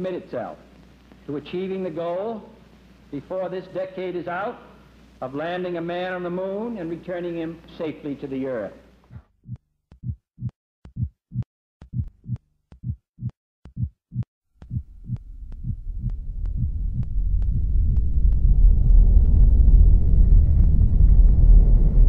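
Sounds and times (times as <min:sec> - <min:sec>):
low heartbeat-like thumps: 0:09.1 - 0:22.0
low rumble: 0:14.7 - 0:22.0.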